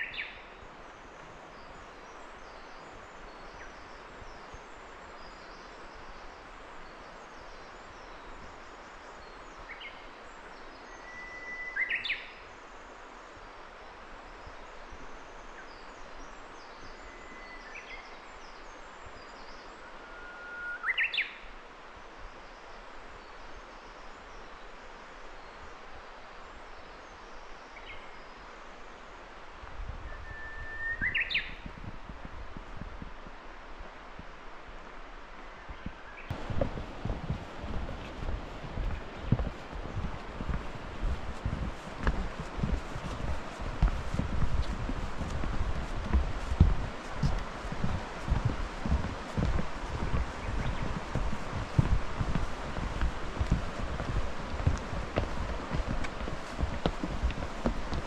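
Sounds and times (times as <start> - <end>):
songbird whistling: 20.0 - 21.3, 30.1 - 31.5
footsteps on path: 36.3 - 58.0.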